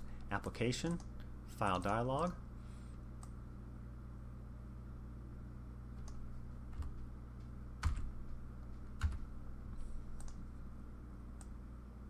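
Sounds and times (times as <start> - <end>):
low electrical hum: 0.0 - 12.0
keyboard and mouse clicks: 10.2 - 10.4.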